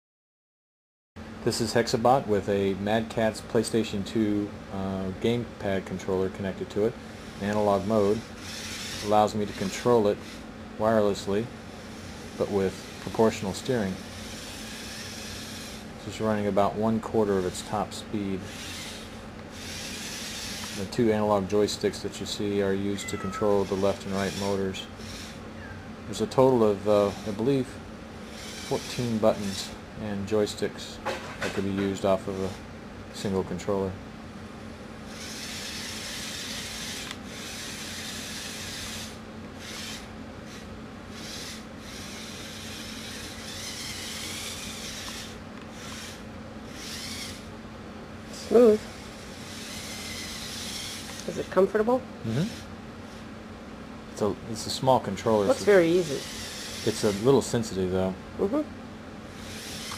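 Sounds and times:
robot drive motors hissing: 6.6 - 16.5, 17.1 - 29.8, 32.0 - 32.6, 35.1 - 47.5, 48.3 - 53.2, 54.5 - 57.9, 59.3 - 59.9.

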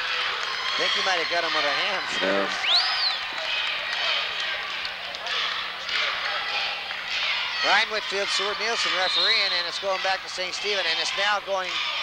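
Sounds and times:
murmur of crowd voices: 0.8 - 12.0.

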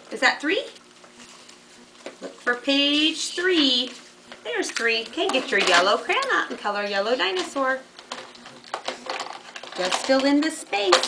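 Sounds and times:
crayons clicking in plastic box: 7.2 - 11.0.

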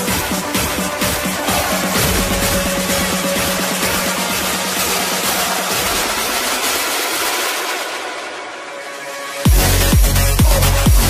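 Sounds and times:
electronic dance music: 0.0 - 11.0.

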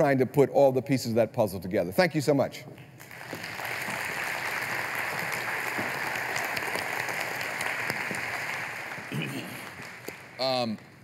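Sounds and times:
audience applauding: 3.0 - 11.0.

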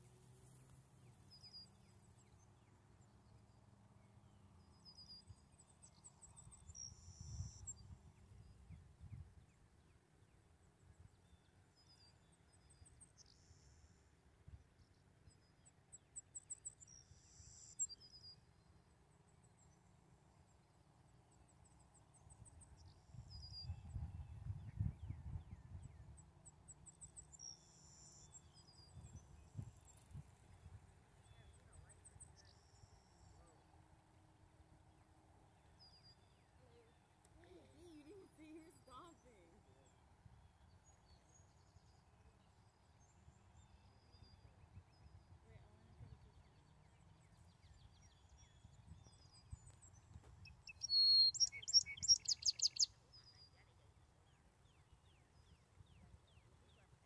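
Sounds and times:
songbirds chirping and trilling: 0.0 - 57.0.

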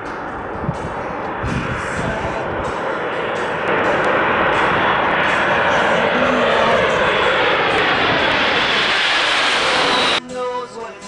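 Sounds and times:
jet airliner roaring overhead: 0.0 - 10.2.

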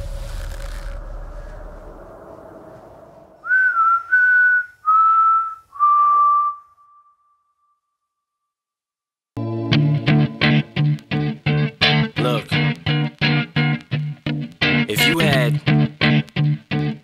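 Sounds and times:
man whistling descending notes: 3.4 - 7.4.

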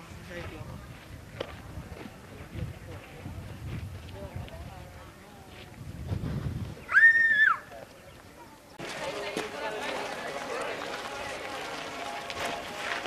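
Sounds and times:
wind rumbling on microphone: 0.0 - 8.4
faint distant voices: 0.0 - 13.0.

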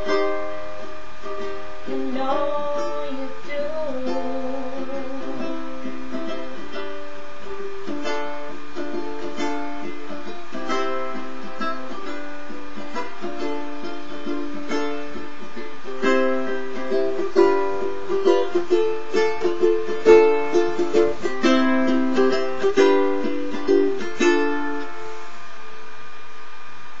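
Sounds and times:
ukulele strumming chords: 0.0 - 26.3.

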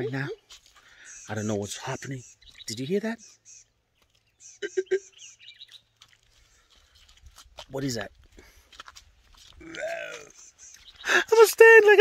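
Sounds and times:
faint bird chirps: 0.0 - 6.7, 10.0 - 11.3.

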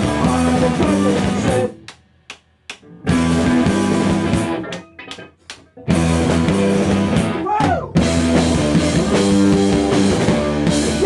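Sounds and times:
rock band playing live: 0.0 - 1.8, 2.9 - 11.0.

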